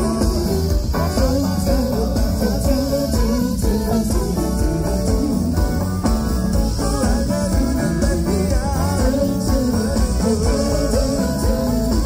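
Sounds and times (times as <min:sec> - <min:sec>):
bass and drums: 0:00.0 - 0:12.0
guitar: 0:00.0 - 0:12.0.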